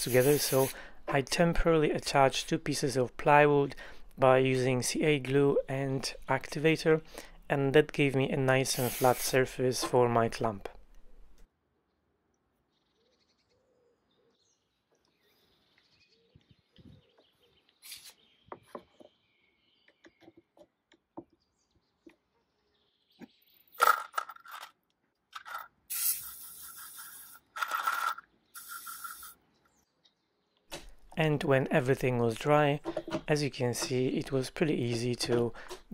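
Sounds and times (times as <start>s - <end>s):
aerosol spray hissing: 0.0s - 0.8s, 8.7s - 9.4s, 25.9s - 27.4s, 28.6s - 29.4s.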